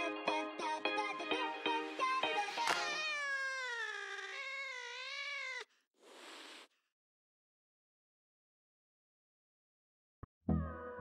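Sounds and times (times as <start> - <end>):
falling wavering meow-like call: 2.6 - 5.7.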